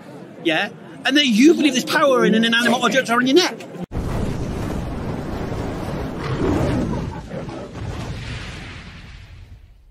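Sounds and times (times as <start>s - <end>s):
deep fiery rumble: 3.9s - 9.9s
lion roar: 6.1s - 8.1s.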